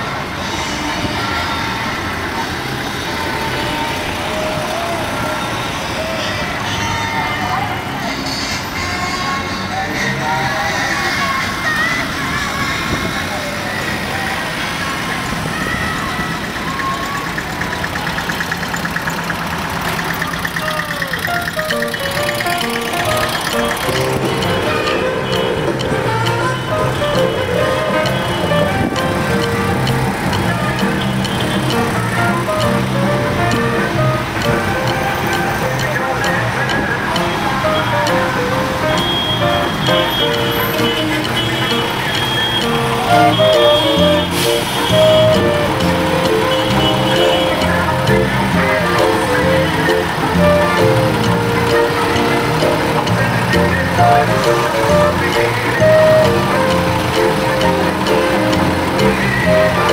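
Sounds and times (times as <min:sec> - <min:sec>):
vehicle engines and tyres: 0:00.0 - 0:59.9
loud music: 0:20.6 - 0:59.9.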